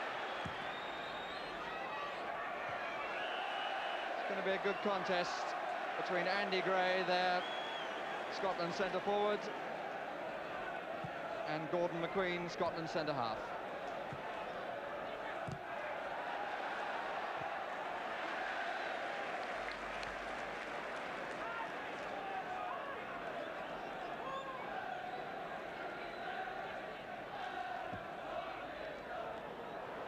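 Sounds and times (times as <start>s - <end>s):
football crowd noise: 0.0s - 30.0s.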